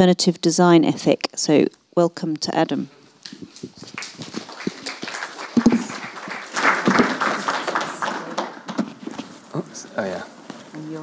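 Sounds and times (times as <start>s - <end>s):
audience applause: 3.8s - 8.8s.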